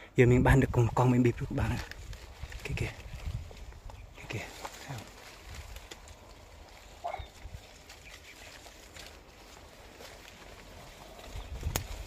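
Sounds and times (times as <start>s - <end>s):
leaves rustling: 0.4s - 12.0s.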